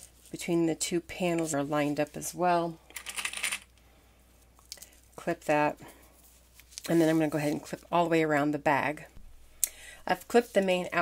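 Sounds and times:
fabric and foam rustling: 0:05.1 - 0:08.1.

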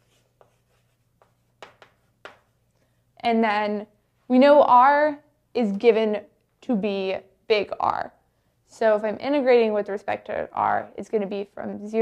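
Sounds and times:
chalk writing on blackboard: 0:00.0 - 0:02.5.

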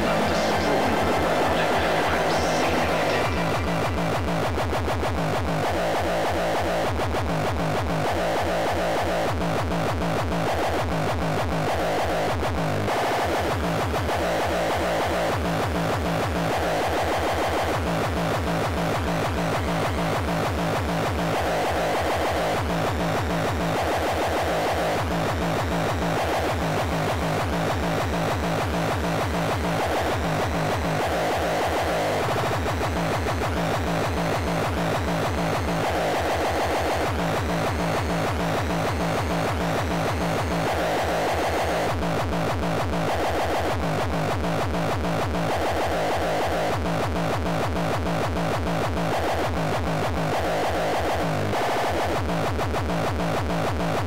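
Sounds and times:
distorted kick drums: 0:00.0 - 0:54.0.

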